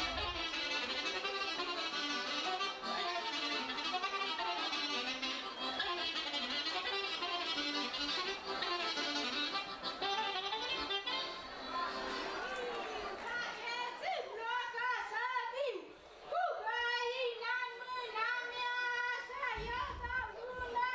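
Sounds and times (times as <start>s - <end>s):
fiddle melody: 0.0s - 12.6s
folk dance music: 0.0s - 13.7s.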